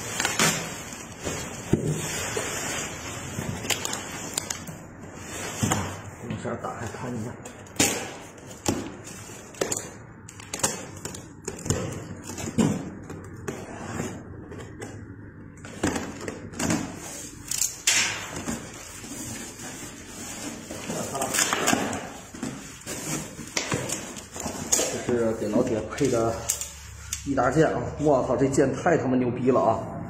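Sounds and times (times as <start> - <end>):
cardboard knocks scrapes and rustles: 0.4 - 3.6, 18.3 - 26.1.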